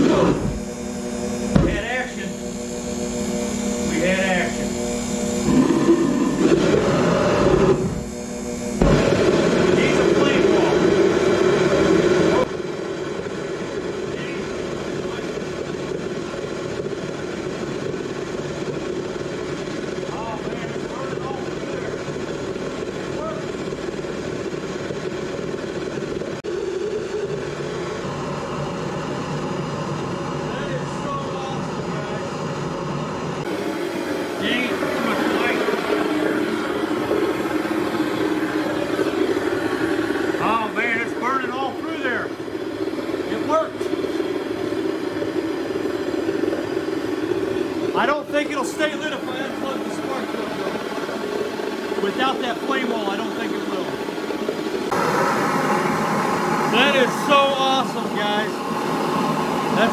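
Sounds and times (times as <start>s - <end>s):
burner flame roaring: 0.0s - 59.9s.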